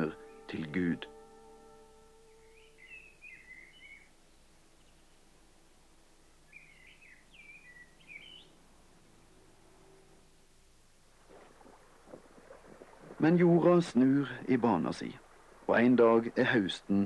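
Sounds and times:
songbird warbling: 0.0s - 5.3s, 6.4s - 8.6s.

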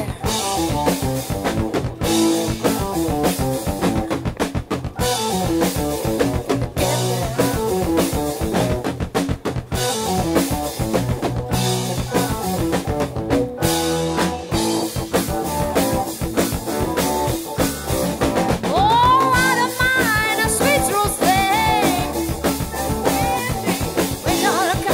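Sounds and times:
bass guitar: 0.0s - 24.9s
drum kit: 0.0s - 24.9s
electric guitar riff: 0.0s - 24.9s.

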